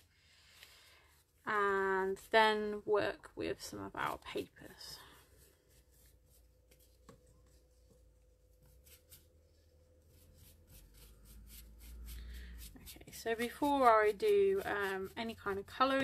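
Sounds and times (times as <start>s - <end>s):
wet paintbrush strokes on paper: 3.9s - 16.0s.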